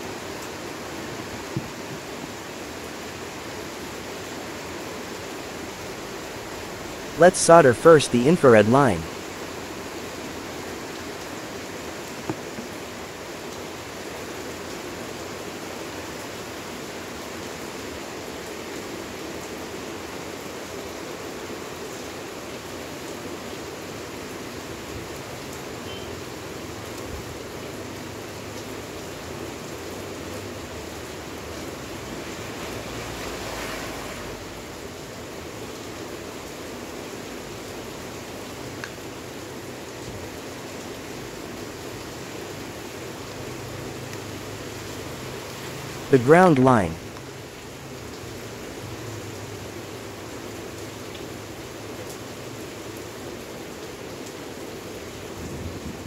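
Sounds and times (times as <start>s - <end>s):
steady background hiss: 6.2s - 9.3s.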